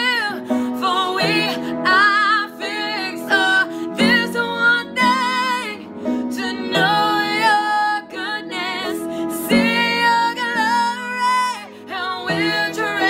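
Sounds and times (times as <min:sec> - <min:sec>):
women singing worship song: 0:00.0 - 0:13.0.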